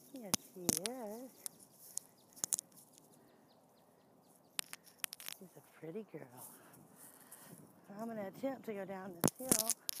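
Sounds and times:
sharp clicks: 0.2 - 3.2, 4.5 - 5.5
faint bird chirps: 1.1 - 5.8.

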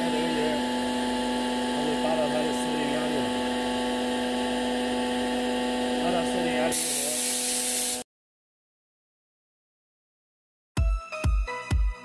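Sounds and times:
air compressor humming: 0.0 - 8.0
loud hiss of air: 6.7 - 8.0.

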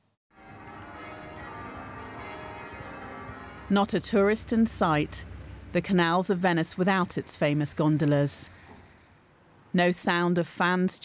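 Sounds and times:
church bells ringing: 0.4 - 7.8.

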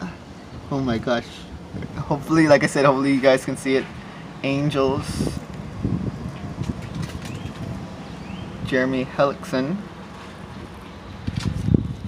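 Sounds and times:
wind buffeting microphone: 0.6 - 2.7, 3.4 - 9.1, 10.4 - 12.0.

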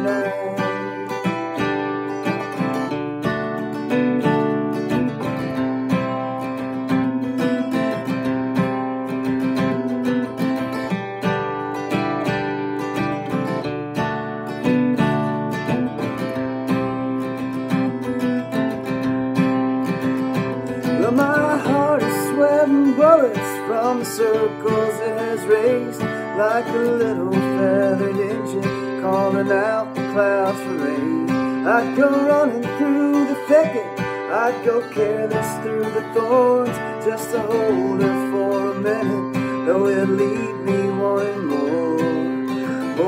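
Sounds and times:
person singing: 0.0 - 2.9, 20.4 - 43.0
acoustic guitar picked and strummed: 0.0 - 43.0.

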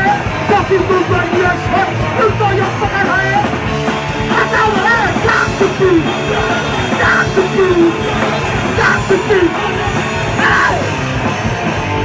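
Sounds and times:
live rock band playing: 0.0 - 12.0
yelled vocals: 0.0 - 12.0.

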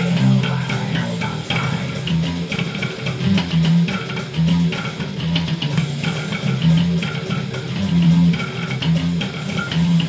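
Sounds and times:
fingerstyle electric bass: 0.0 - 10.0
metal guitars and drums: 0.0 - 10.0.

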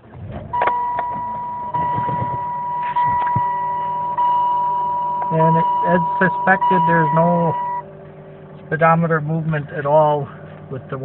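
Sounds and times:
car engine cranking and starting: 0.0 - 11.0
dashboard warning chime: 0.5 - 7.9.

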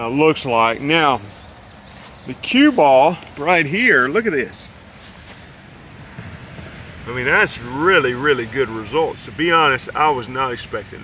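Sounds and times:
high-pitched whine: 0.0 - 11.0.

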